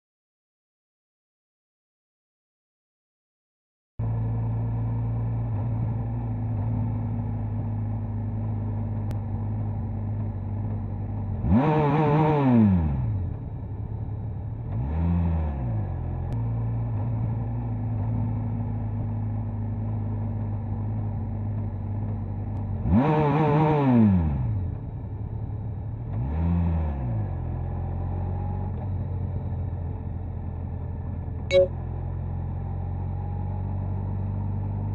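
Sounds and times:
motorcycle engine running and revving: 4.0 - 34.9.

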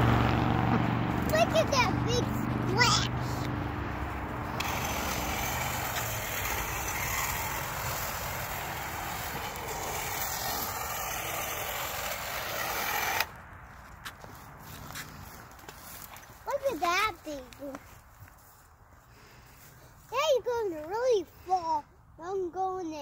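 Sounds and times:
chainsaw cutting brush: 1.1 - 13.4.

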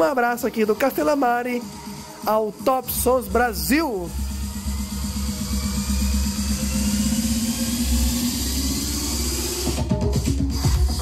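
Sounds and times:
electronic dance music: 0.0 - 11.0
rising sweep: 1.8 - 10.3.

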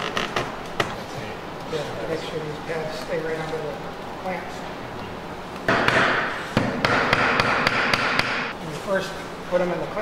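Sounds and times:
hammer knocking on wood: 5.7 - 8.5.

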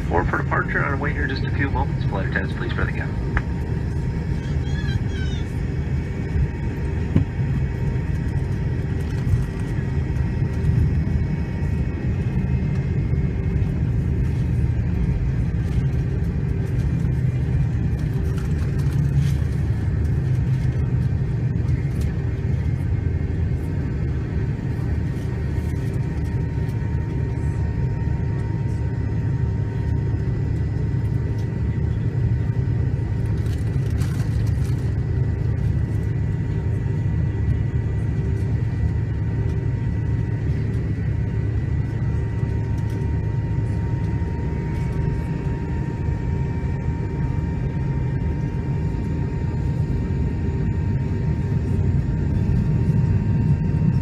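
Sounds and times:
airplane cabin engine rumble: 0.0 - 54.0
faint engine whining tones: 0.0 - 54.0.

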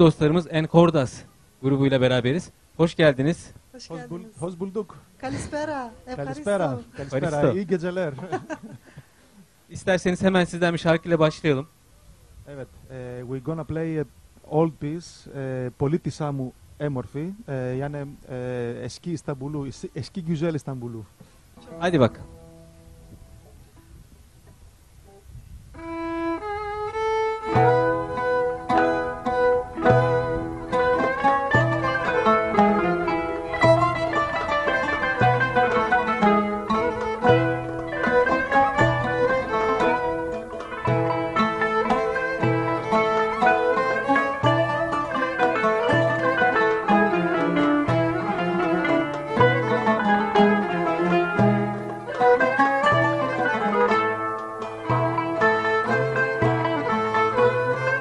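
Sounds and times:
violin melody: 0.0 - 1.0, 1.7 - 8.0, 25.8 - 58.0
string ensemble playing: 0.0 - 8.8, 21.6 - 23.2, 25.8 - 58.0
plucked strings: 21.6 - 24.6, 25.8 - 58.0.

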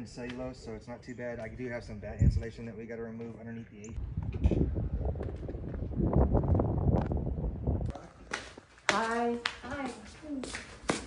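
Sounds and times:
wind buffeting microphone: 1.3 - 3.0, 3.9 - 8.7.

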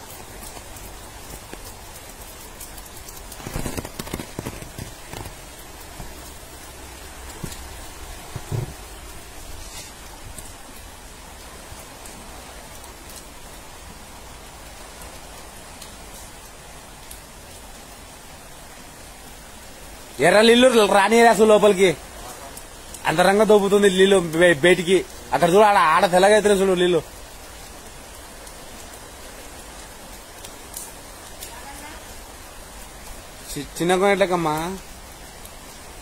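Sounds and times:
water rushing over stone paving: 0.0 - 36.0
brief bumps: 8.3 - 8.8.

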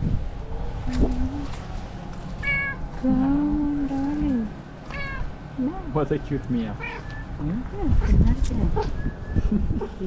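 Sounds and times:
cat meowing: 2.4 - 2.8, 4.9 - 5.3, 6.8 - 7.2.

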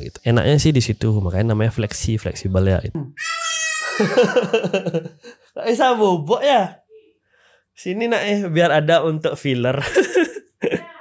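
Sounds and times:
young child crying: 3.1 - 4.6.

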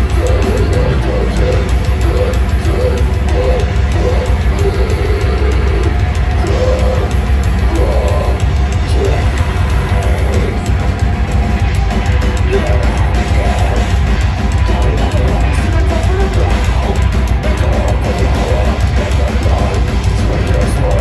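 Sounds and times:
heavy band playing live: 0.0 - 21.0.

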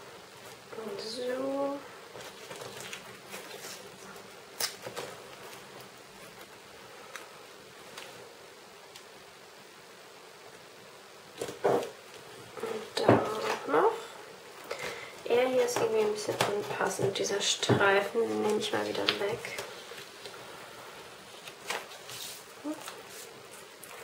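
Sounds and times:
tape rasping and crackling: 2.0 - 9.2, 14.6 - 20.5, 21.1 - 24.0.

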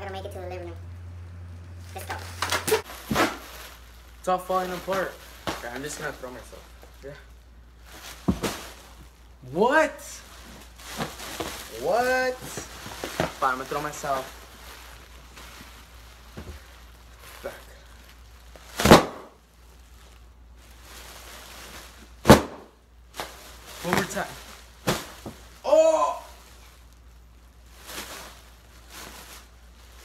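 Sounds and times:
bubble wrap rustling: 0.0 - 30.0.

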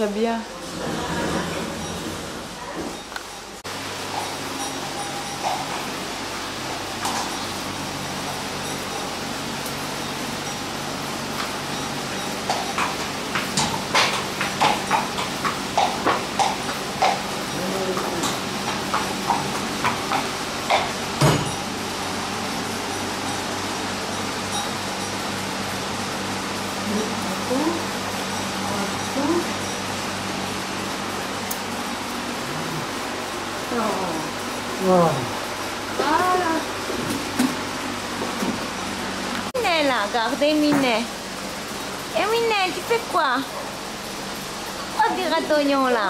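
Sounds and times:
steady background hum: 0.0 - 46.0
horse hooves on concrete: 11.3 - 21.6.

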